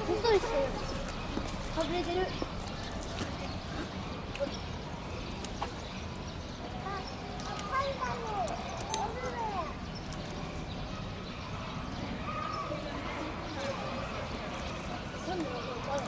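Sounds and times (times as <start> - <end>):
people's voices in background: 0.0 - 16.0.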